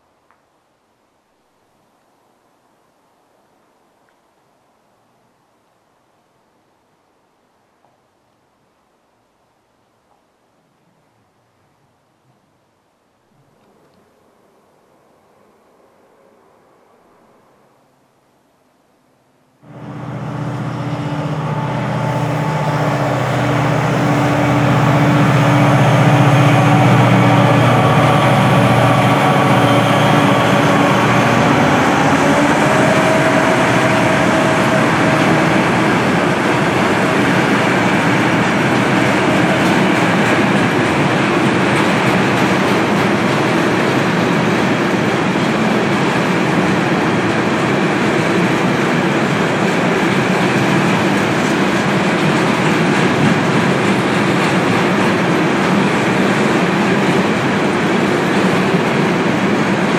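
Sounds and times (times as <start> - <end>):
freight wagons rumbling on rails: 19.6 - 59.9
locomotive humming: 19.6 - 59.9.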